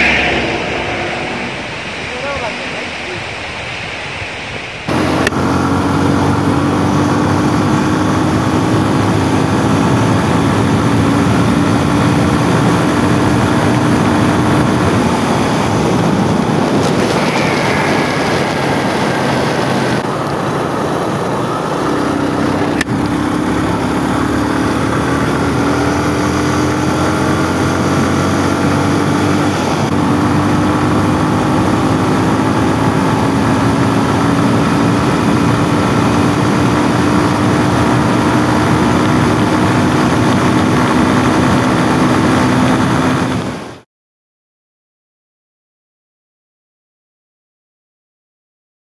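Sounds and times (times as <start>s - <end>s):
wind rushing: 0.0s - 6.4s, 12.6s - 22.4s
motorcycle engine: 4.9s - 43.6s.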